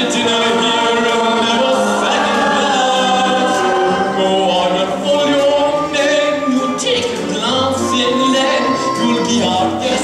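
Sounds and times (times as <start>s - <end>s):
musical accompaniment: 0.0s - 10.0s
stage cast singing in chorus: 0.0s - 10.0s.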